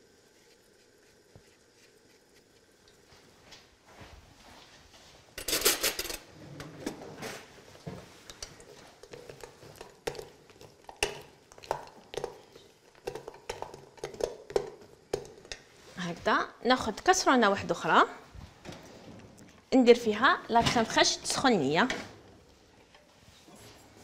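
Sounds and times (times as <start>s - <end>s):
metal spoon scraping metal bowl: 5.4s - 6.3s.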